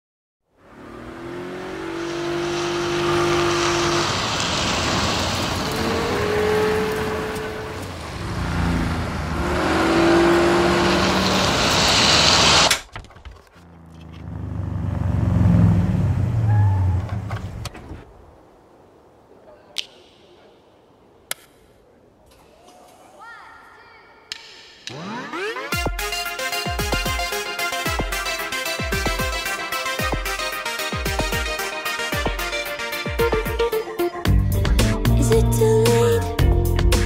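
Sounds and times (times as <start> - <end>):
car engine revving: 0.5 - 12.8, 13.5 - 18.0
tyres spinning hiss: 1.7 - 12.7.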